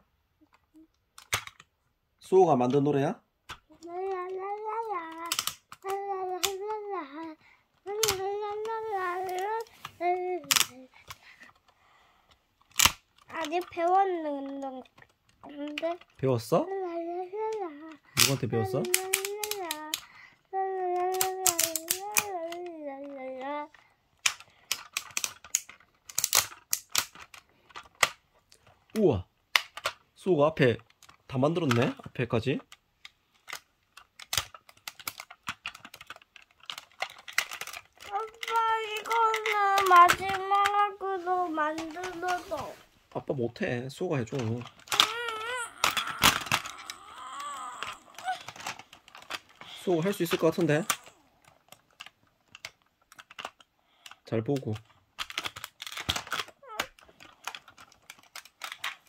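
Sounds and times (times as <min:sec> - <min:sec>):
plastic toy parts clicking: 0:00.4 - 0:01.8, 0:02.6 - 0:42.8, 0:43.6 - 0:59.0
young child whining: 0:03.8 - 0:10.9, 0:16.6 - 0:23.7, 0:38.0 - 0:42.9, 0:44.8 - 0:48.8, 0:56.6 - 0:57.0.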